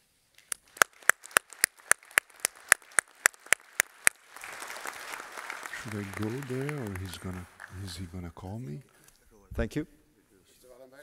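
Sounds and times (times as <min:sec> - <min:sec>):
person clapping near microphone: 0:00.4 - 0:08.0
audience applause: 0:00.5 - 0:08.4.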